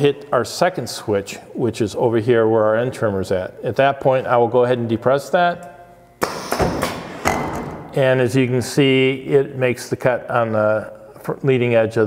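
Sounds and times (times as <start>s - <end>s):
pneumatic trimmer thump: 6.2s - 7.9s.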